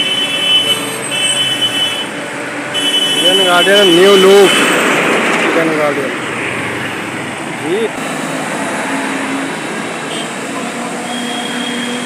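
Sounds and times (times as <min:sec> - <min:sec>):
road traffic rushing: 0:00.0 - 0:12.0.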